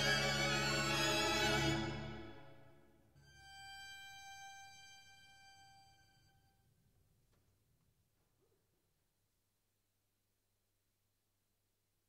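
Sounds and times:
chamber ensemble chord: 0.0 - 2.8
high violin note: 0.0 - 6.5.

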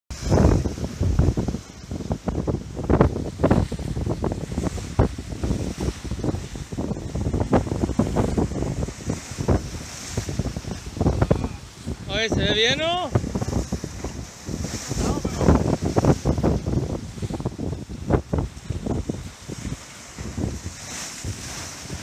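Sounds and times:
surf breaking against rocks: 0.1 - 22.0
wind buffeting microphone: 0.1 - 22.0.

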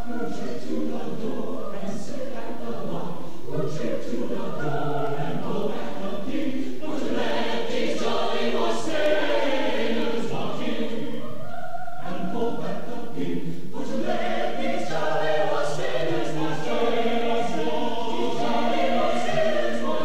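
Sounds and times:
mixed choir singing: 0.0 - 20.0.

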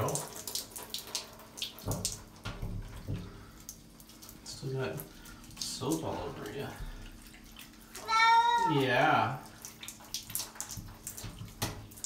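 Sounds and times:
shower spray splashing on fur: 4.2 - 12.0.

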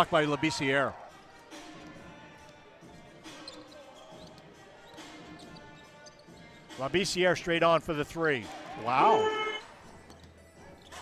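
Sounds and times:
music over sound system: 8.6 - 9.8.

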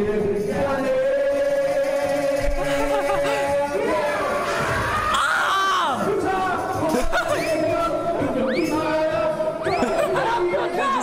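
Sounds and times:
young men shouting and cheering: 2.3 - 11.0.

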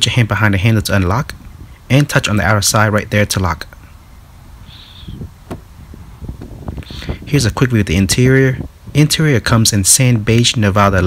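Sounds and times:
wind rumbling on microphone: 0.0 - 11.0
car door lock click: 5.4 - 5.7.

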